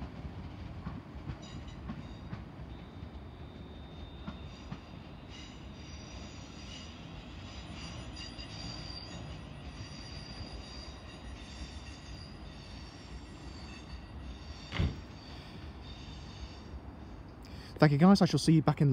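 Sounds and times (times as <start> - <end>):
electric train rumbling: 0.0 - 18.9.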